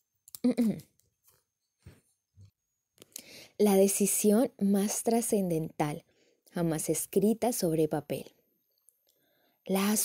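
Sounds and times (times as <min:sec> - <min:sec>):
faint mouth noises: 0:00.3 - 0:01.0.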